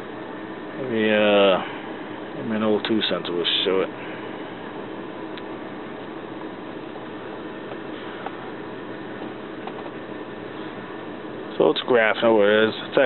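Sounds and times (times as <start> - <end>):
car cabin hiss and hum: 0.0 - 13.0.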